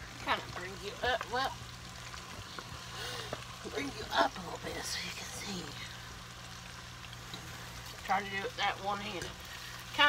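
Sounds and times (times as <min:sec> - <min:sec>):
oil sizzling while deep-frying: 0:00.0 - 0:10.0.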